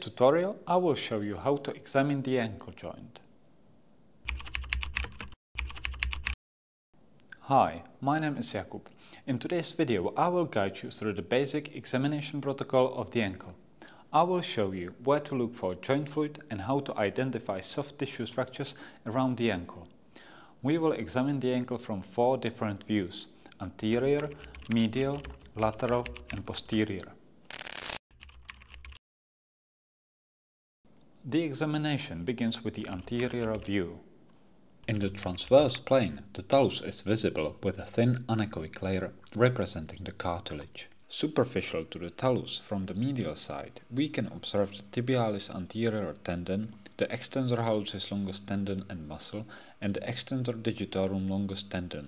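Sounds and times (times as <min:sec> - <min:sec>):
keyboard typing clicks: 0:04.3 - 0:06.4, 0:23.9 - 0:26.8, 0:28.2 - 0:29.0, 0:32.9 - 0:33.7
fast run of sharp clicks: 0:27.5 - 0:28.9.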